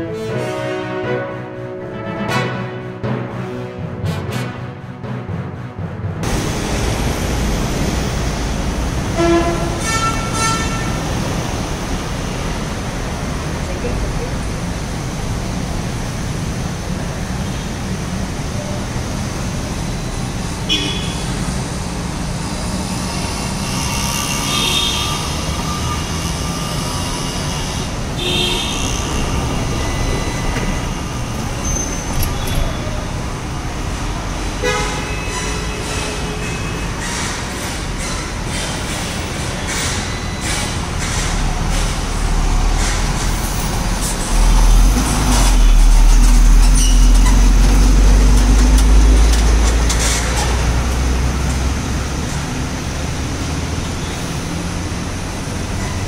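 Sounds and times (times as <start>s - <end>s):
highway traffic: 0.0s - 56.0s
vehicle horn toots: 9.2s - 11.0s, 20.7s - 21.4s, 24.1s - 26.2s, 28.2s - 30.9s, 34.6s - 36.9s.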